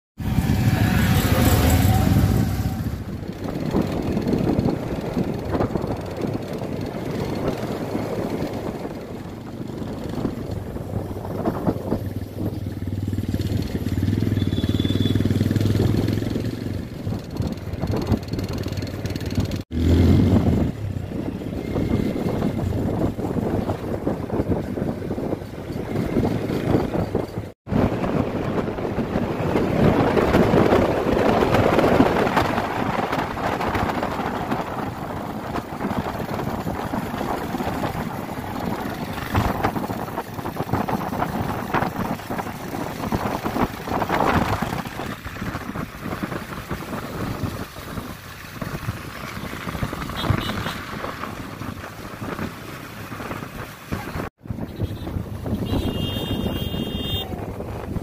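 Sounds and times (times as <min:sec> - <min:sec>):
motorcycle engine running: 0:00.2 - 0:58.0.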